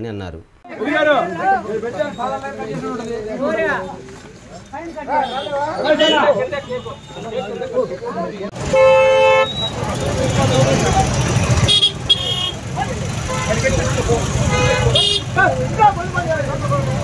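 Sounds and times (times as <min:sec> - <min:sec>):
crowd voices and shouting: 0:00.6 - 0:17.0
vehicle horn honking: 0:05.2 - 0:07.5, 0:08.6 - 0:10.9, 0:11.5 - 0:15.4.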